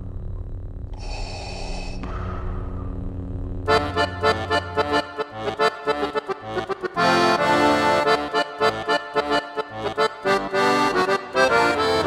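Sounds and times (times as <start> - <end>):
steady low hum: 0.0 - 12.0
heavy breathing: 1.0 - 3.0.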